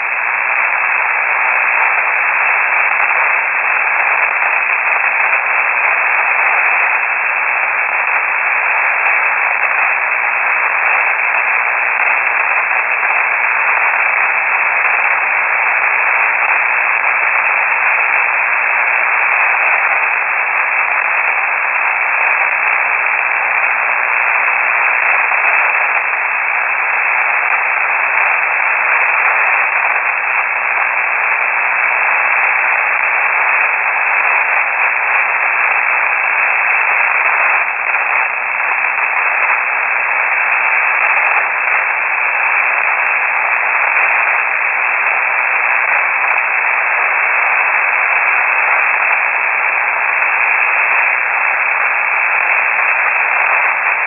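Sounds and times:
shortwave radio static hiss: 0.0 - 54.0.

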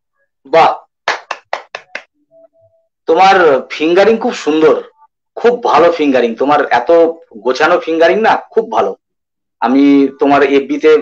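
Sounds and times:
person clapping: 1.0 - 2.1.

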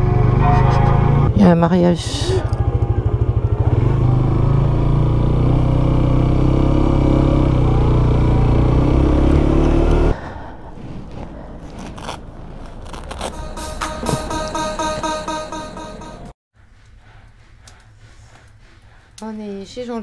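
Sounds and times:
motorcycle engine running: 1.0 - 9.6.

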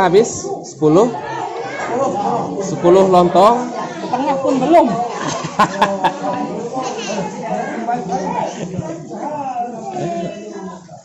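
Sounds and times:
people chatting: 1.0 - 11.0.

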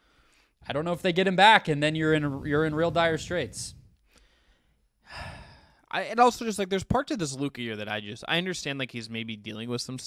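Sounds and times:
man breathing out in a sigh: 4.0 - 5.8.

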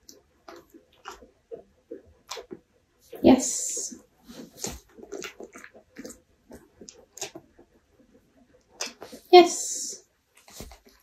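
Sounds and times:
dog licking and chewing: 0.0 - 3.2, 3.9 - 9.3, 10.3 - 11.0.

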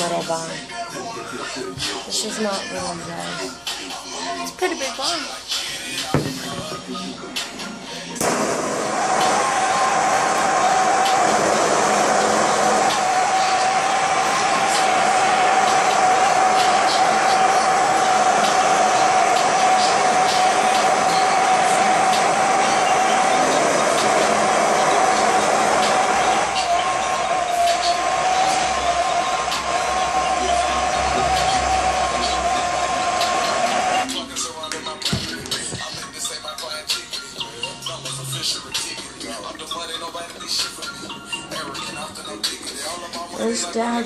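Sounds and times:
butane torch hissing: 7.6 - 34.2
whistling tone: 9.0 - 42.6.

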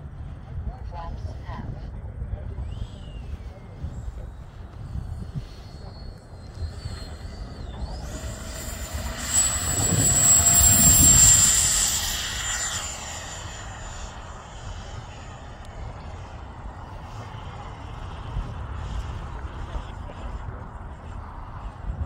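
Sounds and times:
electric ducted fan whine: 0.0 - 21.0
rush of air: 2.5 - 22.0.

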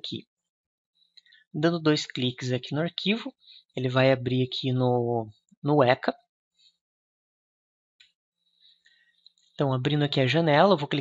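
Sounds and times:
person speaking: 1.5 - 6.2.

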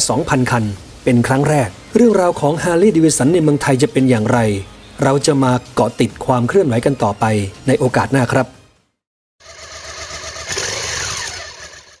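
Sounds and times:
motorcycle engine revving: 9.4 - 12.0.

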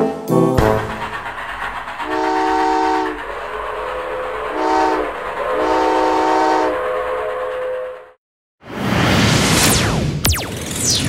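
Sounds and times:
moving train rumble: 0.6 - 8.2
train whistle blowing: 2.0 - 3.3, 4.0 - 8.1.

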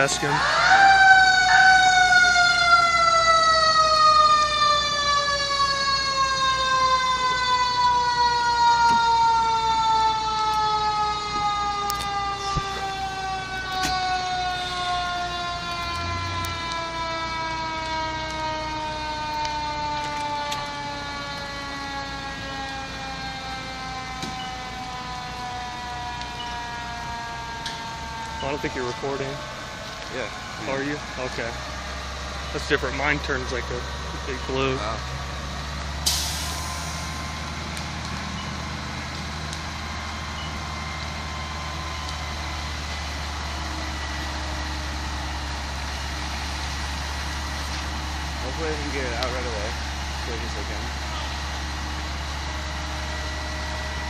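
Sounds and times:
mechanical siren winding down: 0.0 - 54.0.

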